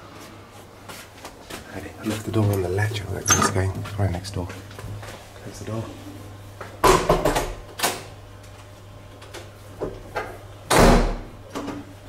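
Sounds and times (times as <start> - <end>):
door shutting with deep thud: 10.7 - 11.4.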